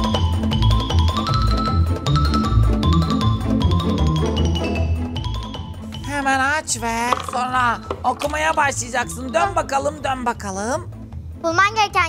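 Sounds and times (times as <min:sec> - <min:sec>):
mallet percussion notes: 0:00.0 - 0:10.9.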